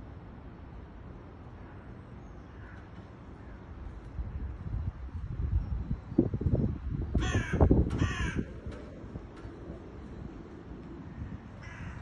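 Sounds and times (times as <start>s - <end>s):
large bird cawing: 1.6s - 3.7s, 7.1s - 8.6s, 11.1s - 12.0s
wind rumbling on microphone: 2.8s - 12.0s.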